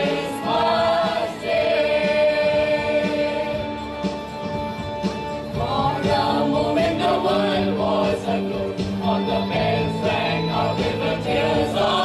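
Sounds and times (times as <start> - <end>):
mixed choir singing a carol: 0.0 - 3.9, 5.6 - 12.0.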